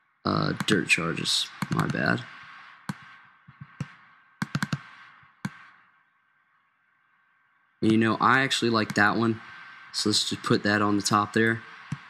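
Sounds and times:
computer mouse and keyboard clicks: 1.6s - 2.0s, 2.9s - 5.7s.

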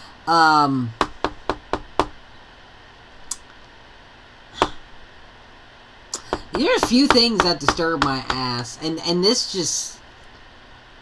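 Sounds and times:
knocks on hard surface: 1.0s - 2.2s, 6.3s - 8.5s.

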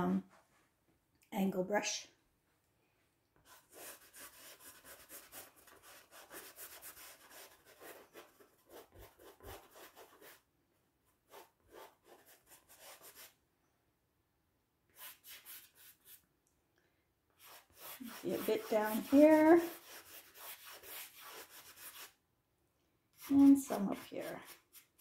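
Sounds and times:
brush rubbing on canvas: 3.5s - 10.4s, 11.3s - 13.4s, 15.0s - 16.2s, 17.4s - 22.2s, 23.2s - 25.0s.

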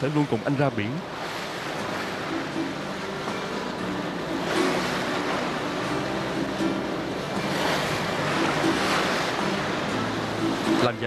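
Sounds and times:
sea waves washing: 0.0s - 11.0s
soft background music: 0.0s - 11.0s.

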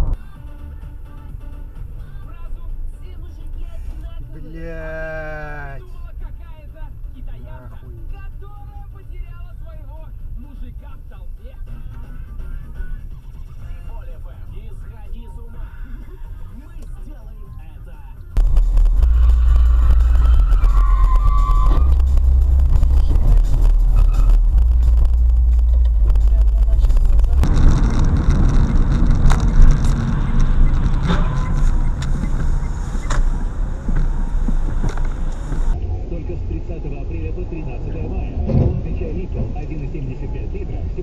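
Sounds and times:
car engine and road rumble: 0.0s - 41.0s.

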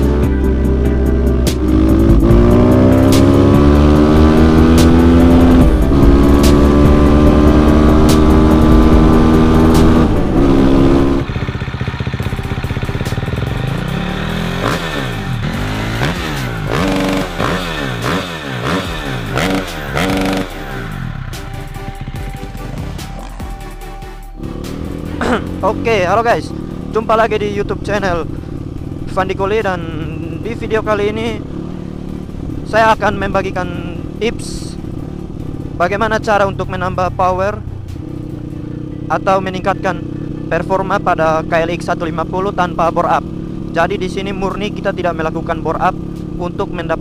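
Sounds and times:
motorcycle engine accelerating: 0.0s - 47.0s
music: 0.0s - 47.0s
quick rising and falling revs: 1.4s - 11.3s, 13.9s - 21.0s.

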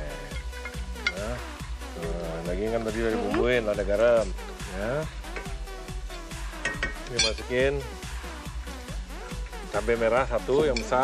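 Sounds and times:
electronic music with bass beat: 0.0s - 11.0s.

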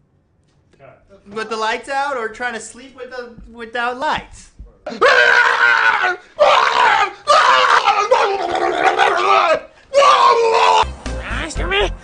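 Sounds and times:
man screaming in fright: 4.9s - 10.8s.

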